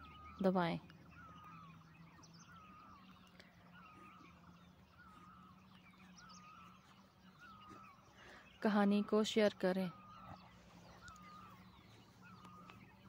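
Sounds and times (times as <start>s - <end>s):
bird chirping: 0.0s - 13.0s
low steady hum: 0.0s - 13.0s.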